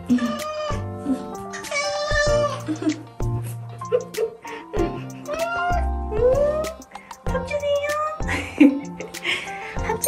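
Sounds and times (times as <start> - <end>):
light background music: 0.0 - 10.0
cat meowing: 0.1 - 0.8, 1.5 - 2.6, 5.3 - 6.6.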